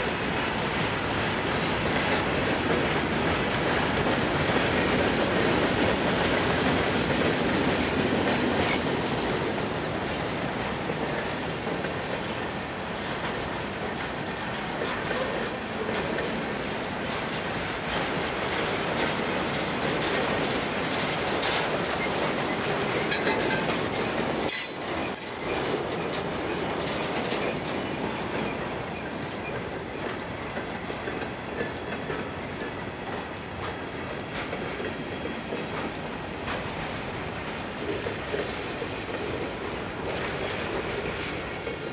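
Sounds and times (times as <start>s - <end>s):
wheels clacking over rail joints: 0.0s - 41.9s.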